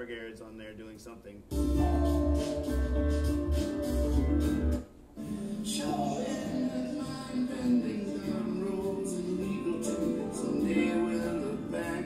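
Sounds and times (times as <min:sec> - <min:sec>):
recorded music over loudspeakers: 0:00.0 - 0:12.0.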